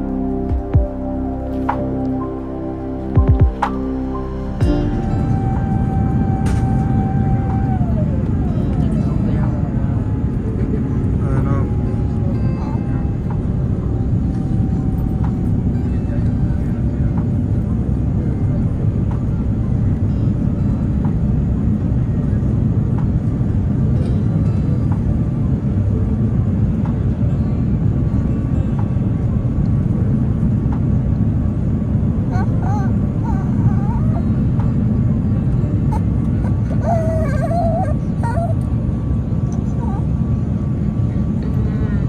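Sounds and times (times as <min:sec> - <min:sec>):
jet cabin rumble: 0:00.0 - 0:42.0.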